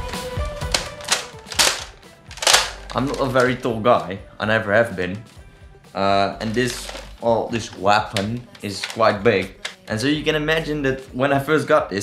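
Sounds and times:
plastic toy blaster clicking: 0:00.7 - 0:03.2.

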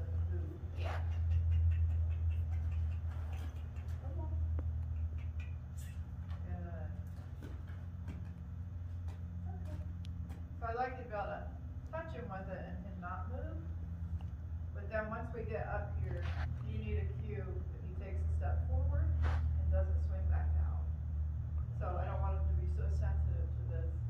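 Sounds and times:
steady low rumble: 0:00.0 - 0:24.0.

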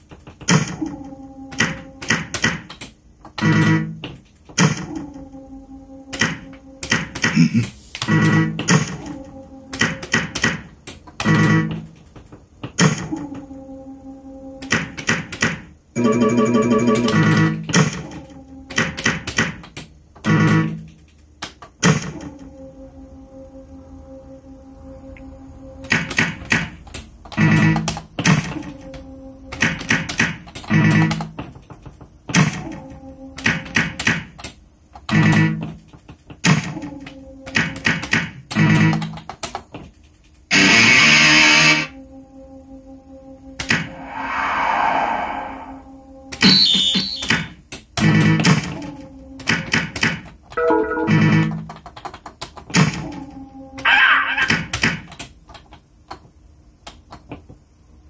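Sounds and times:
machine low hum: 0:00.0 - 0:51.8, 0:52.7 - 0:53.9
slot machine tone: 0:16.0 - 0:17.6, 0:46.2 - 0:47.5, 0:50.6 - 0:51.5
hiss-like sound effect: 0:43.5 - 0:46.6.

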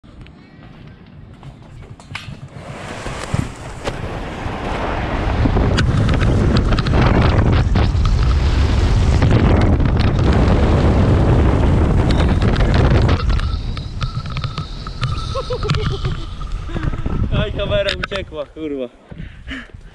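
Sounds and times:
wind rushing over microphone: 0:01.7 - 0:19.9
inflatable tube sliding on plastic: 0:02.5 - 0:06.6.

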